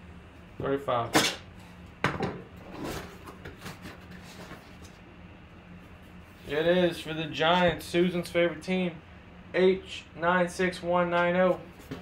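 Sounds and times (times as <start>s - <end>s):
cardboard scraping and rustling: 2.6s - 5.0s.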